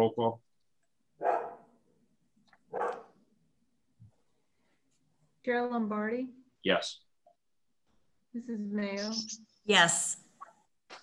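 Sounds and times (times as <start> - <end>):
dog barking: 1.2 - 1.7, 2.7 - 3.2.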